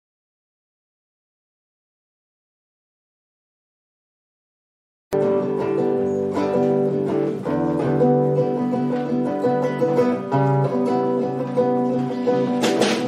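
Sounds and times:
acoustic guitar picking: 0:05.2 - 0:13.0.

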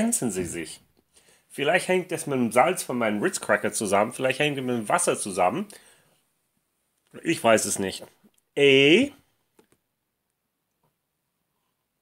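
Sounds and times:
person speaking: 0:00.0 - 0:05.8, 0:07.0 - 0:09.4.

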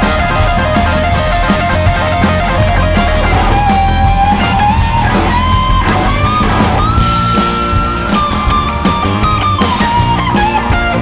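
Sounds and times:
bass and drums: 0:00.0 - 0:11.0
electric guitar lead: 0:00.0 - 0:11.0.

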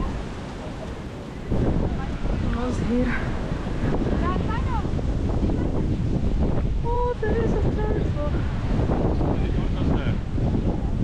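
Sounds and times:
sea surf rushing: 0:00.0 - 0:11.0
wind buffeting microphone: 0:00.0 - 0:11.0.

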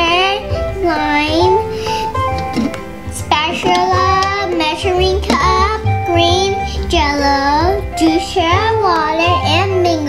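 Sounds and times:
background music: 0:00.0 - 0:10.0
young girl's voice: 0:00.0 - 0:10.0.

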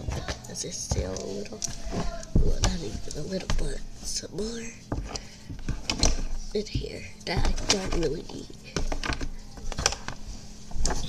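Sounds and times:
crayons clicking and rustling: 0:00.0 - 0:11.0
steady low hum: 0:00.0 - 0:11.0.

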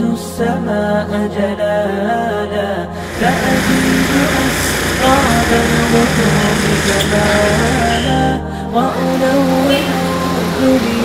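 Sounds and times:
unaccompanied vocal nasheed: 0:00.0 - 0:11.0
street and crowd noise: 0:03.0 - 0:08.2.

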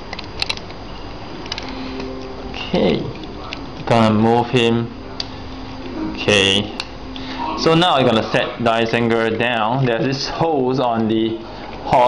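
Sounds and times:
steady background hiss: 0:00.0 - 0:12.0
plastic figure parts clicking: 0:00.1 - 0:00.8.

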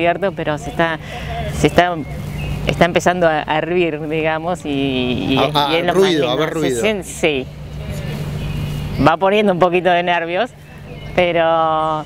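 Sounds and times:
minibus engine idling: 0:03.9 - 0:08.3
person speaking: 0:05.2 - 0:07.0.

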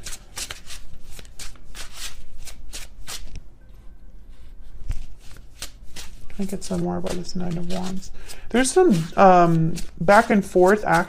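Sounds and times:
cards being shuffled: 0:00.0 - 0:03.4, 0:04.8 - 0:11.0.

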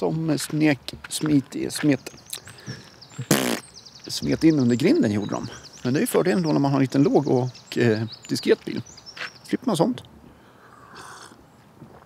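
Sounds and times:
man's raspy vocal buzz: 0:03.2 - 0:03.6.

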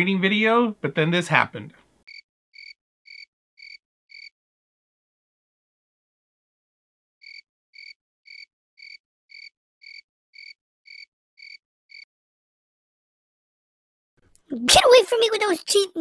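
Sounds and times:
cricket chirps: 0:07.2 - 0:12.0.

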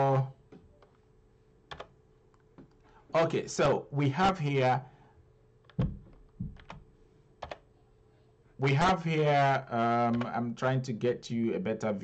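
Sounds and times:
computer keyboard taps: 0:05.6 - 0:06.8.

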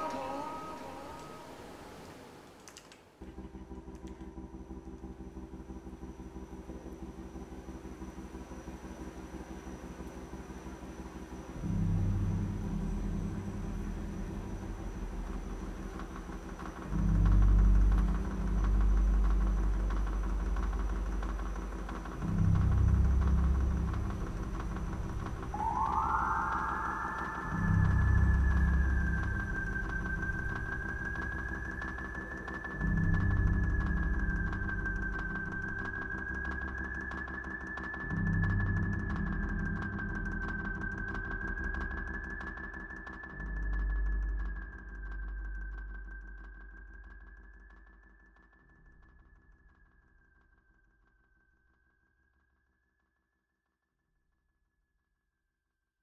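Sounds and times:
high sliding wavering tone: 0:00.0 - 0:02.0, 0:25.4 - 0:33.2
deep rumbling drone: 0:03.2 - 0:42.6.

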